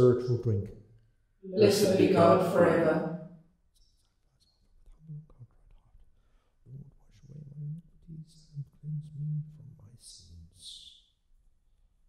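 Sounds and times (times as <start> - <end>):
man murmuring a prayer: 0.0 - 0.7, 6.7 - 10.9.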